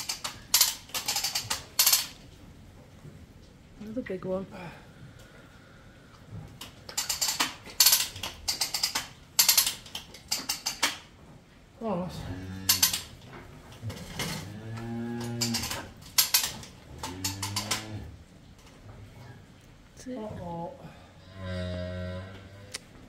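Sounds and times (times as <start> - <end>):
metallic rattling and clicking: 0.0 - 2.3, 6.6 - 11.1, 12.6 - 18.8
cow bellowing: 12.2 - 13.0, 14.4 - 15.9, 16.9 - 18.2.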